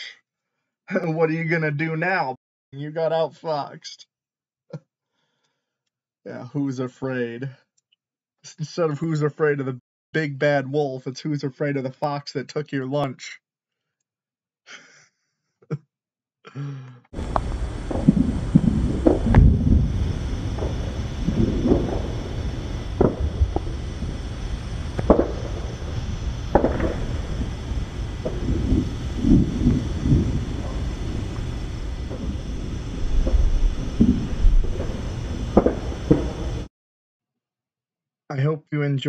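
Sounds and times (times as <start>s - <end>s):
fireworks bangs and booms: 17.2s - 36.7s
low rumble: 17.2s - 36.7s.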